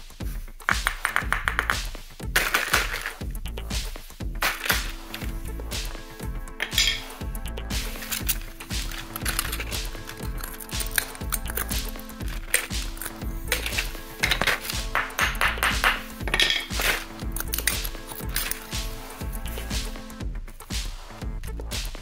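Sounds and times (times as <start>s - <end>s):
background music: 0.0s - 22.0s
clinking chips: 2.4s - 3.2s, 4.4s - 5.3s, 6.6s - 7.2s, 7.9s - 18.8s.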